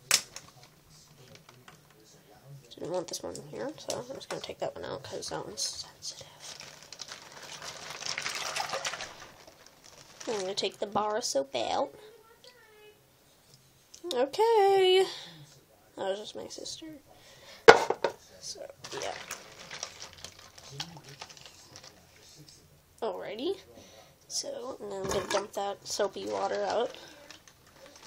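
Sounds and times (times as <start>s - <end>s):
water sloshing in a sink: 7.4s - 9.6s, 18.9s - 21.2s.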